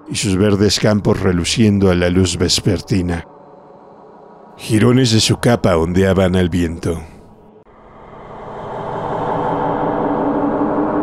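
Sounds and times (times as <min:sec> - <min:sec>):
rushing droning sound effect: 0:07.3 - 0:11.0.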